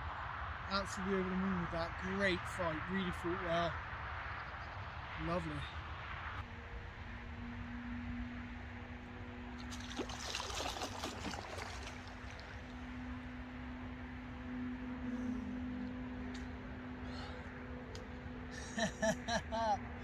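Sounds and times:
steady low hum: 0.0s - 20.0s
fish splashing in water: 9.6s - 12.8s.

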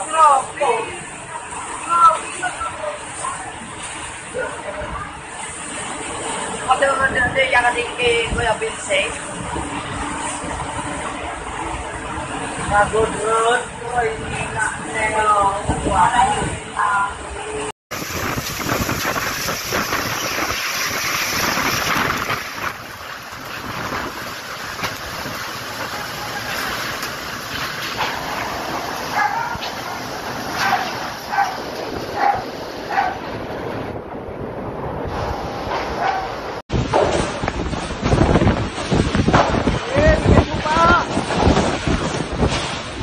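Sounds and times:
wind and heavy rain: 0.0s - 43.0s
dog barking: 29.1s - 29.7s, 30.6s - 31.6s, 32.2s - 33.2s, 36.0s - 36.4s.

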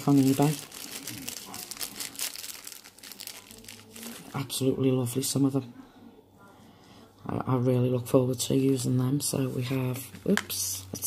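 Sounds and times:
plastic bag crinkling: 0.0s - 4.6s.

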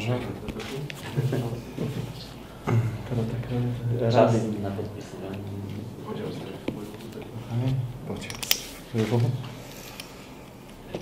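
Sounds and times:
paper sheets rustling: 0.5s - 2.1s.

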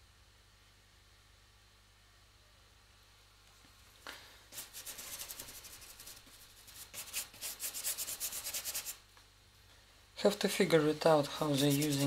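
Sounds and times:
paintbrush scrubbing paint: 4.5s - 9.0s, 11.2s - 12.0s.

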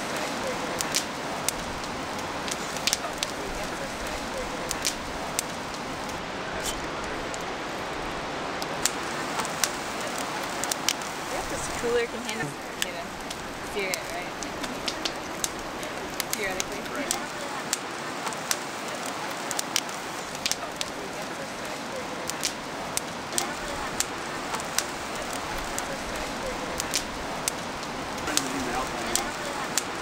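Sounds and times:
wood fire crackling: 0.0s - 30.0s.

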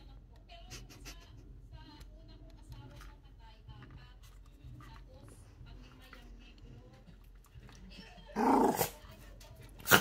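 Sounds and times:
dog snarling angrily: 8.4s - 9.0s.

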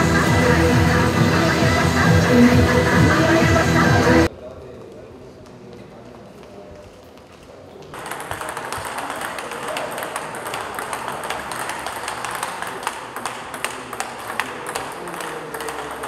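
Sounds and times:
hall background noise: 0.0s - 16.0s
table tennis ball clicks: 8.0s - 16.0s.

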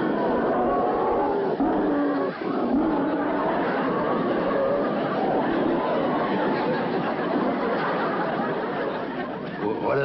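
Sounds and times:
studio audience laughter: 1.6s - 10.0s
man speaking: 9.6s - 10.0s.

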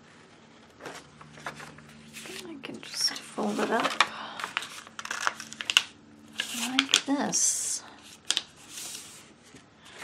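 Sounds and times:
paper rustling and crackling: 0.6s - 7.2s, 8.1s - 10.0s.

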